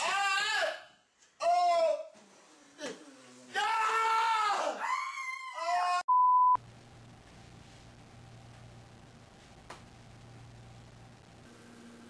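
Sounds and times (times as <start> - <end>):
cry: 0.0 - 2.2, 2.8 - 6.1
high-pitched scream: 3.5 - 6.1.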